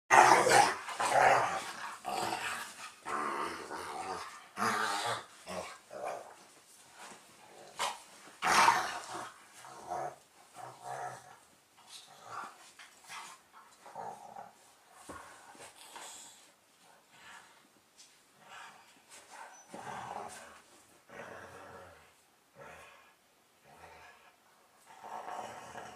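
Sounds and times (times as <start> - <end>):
dogs growling: 0.1 - 16.4, 19.5 - 25.9.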